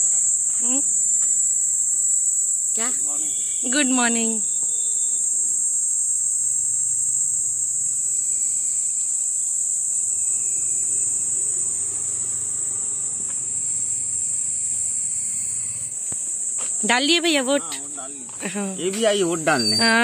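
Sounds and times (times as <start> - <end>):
high-pitched insect chorus: 0.0 - 20.0.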